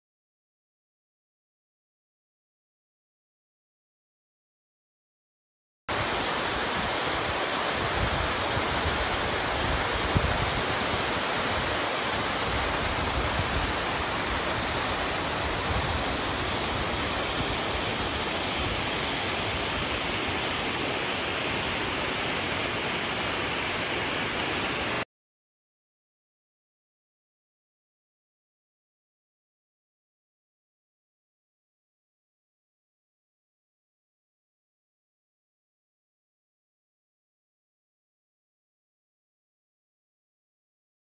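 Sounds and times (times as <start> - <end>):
waterfalls rushing over rock: 5.9 - 25.0.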